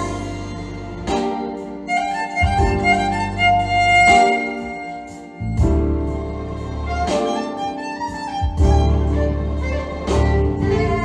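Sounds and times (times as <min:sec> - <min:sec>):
electric bass: 0:00.0 - 0:07.3, 0:08.0 - 0:11.0
keyboard: 0:00.0 - 0:11.0
violin melody: 0:00.0 - 0:11.0.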